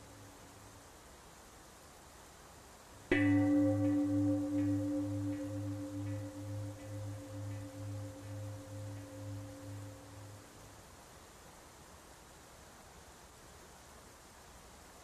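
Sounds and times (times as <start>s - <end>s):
meditation bell ringing: 3.1s - 10.4s.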